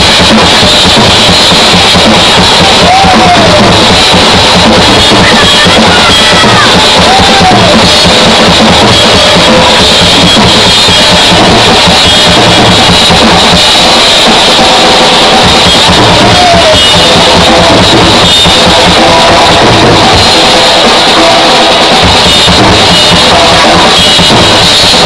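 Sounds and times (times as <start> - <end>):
rock band playing live: 0.0 - 14.4, 15.3 - 20.2
drum kit beat: 0.0 - 25.0.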